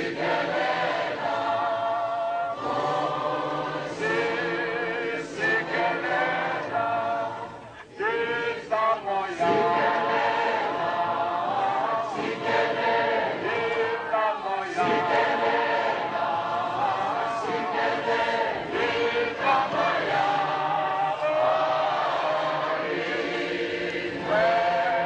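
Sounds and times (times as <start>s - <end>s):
choir singing in harmony: 0.0s - 25.0s.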